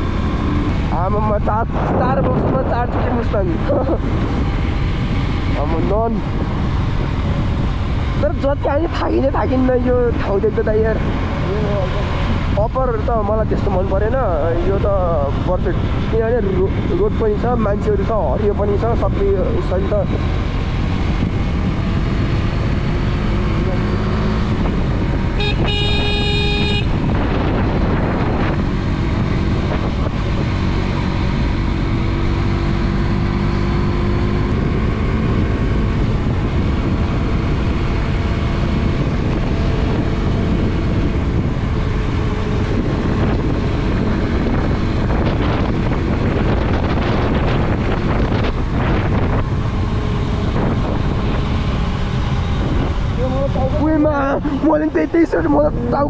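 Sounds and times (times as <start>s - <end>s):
wind rush on microphone: 0.0s - 56.0s
vehicle horn: 25.4s - 27.0s.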